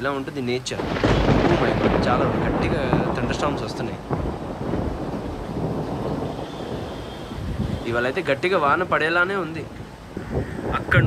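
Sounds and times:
thunderstorm rumble: 0:00.0 - 0:11.0
wind buffeting microphone: 0:00.0 - 0:11.0.

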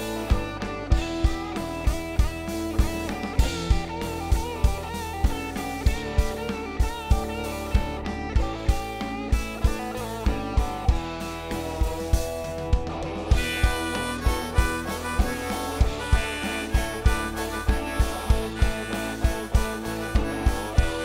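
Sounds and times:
bass guitar: 0:00.0 - 0:21.0
drums with steady kick beat: 0:00.0 - 0:21.0
electric guitar lead with bent notes: 0:00.0 - 0:21.0
harmonica lead: 0:00.0 - 0:21.0.

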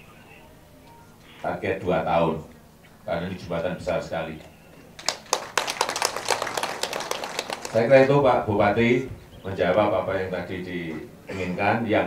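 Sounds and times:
audience clapping: 0:04.9 - 0:08.1.

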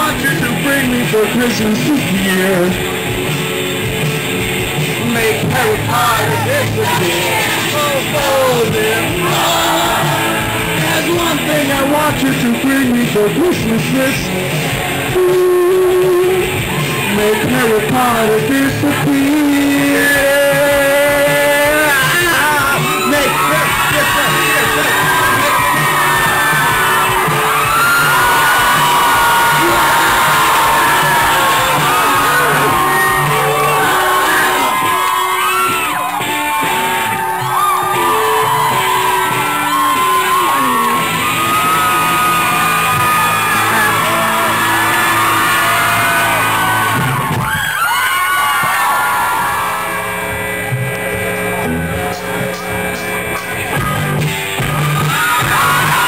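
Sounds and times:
live rock band playing: 0:00.0 - 0:56.0
audience whooping and yelling: 0:04.7 - 0:12.2, 0:14.0 - 0:56.0.

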